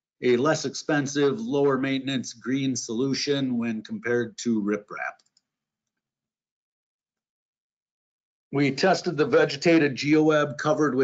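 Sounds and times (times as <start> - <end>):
man speaking: 0.2 - 5.1, 8.6 - 11.0.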